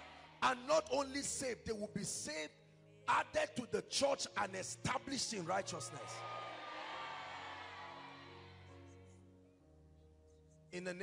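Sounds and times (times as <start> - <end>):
soft music with long held notes: 0.0 - 11.0.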